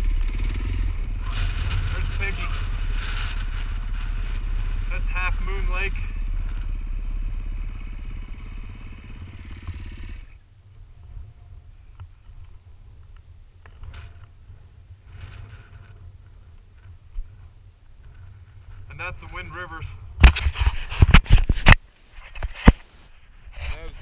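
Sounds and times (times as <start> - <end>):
dirt bike engine idling: 0.0 - 19.0
wind rumbling on microphone: 0.0 - 24.0.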